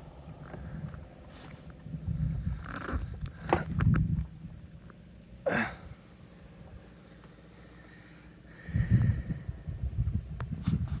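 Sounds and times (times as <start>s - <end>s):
wind buffeting microphone: 1.8s - 4.7s, 8.5s - 11.0s.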